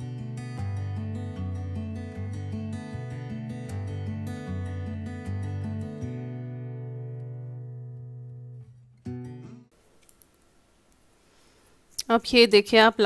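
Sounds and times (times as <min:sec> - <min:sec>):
guitar chord: 0:00.0 - 0:09.7
faint room noise: 0:08.3 - 0:13.0.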